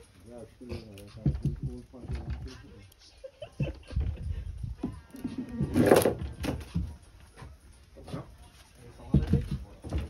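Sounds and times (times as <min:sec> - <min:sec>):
men talking: 0:00.0 - 0:05.4, 0:07.4 - 0:10.0.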